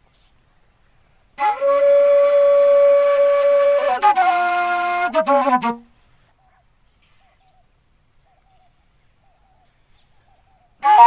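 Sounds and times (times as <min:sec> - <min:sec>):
side-blown flute sliding note: 0:01.4 - 0:05.8.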